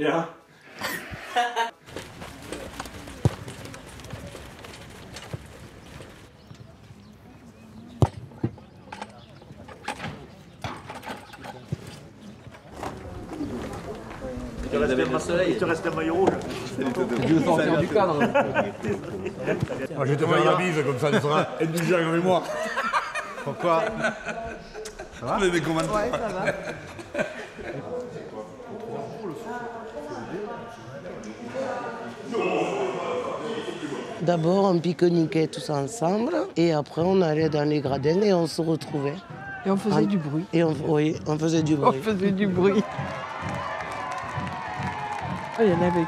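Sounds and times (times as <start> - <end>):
people talking indistinctly: 7.0 - 43.5.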